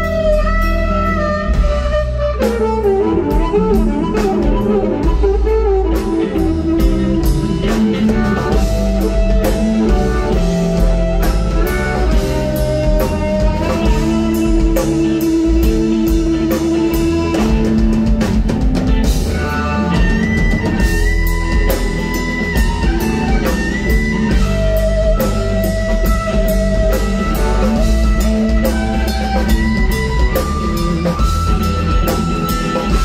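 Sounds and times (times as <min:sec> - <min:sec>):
amplified blues harmonica: 0:00.0 - 0:33.0
live band playing: 0:00.0 - 0:33.0.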